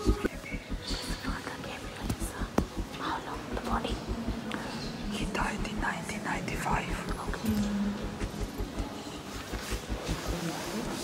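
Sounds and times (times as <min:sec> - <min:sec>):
people whispering: 0:00.0 - 0:11.0.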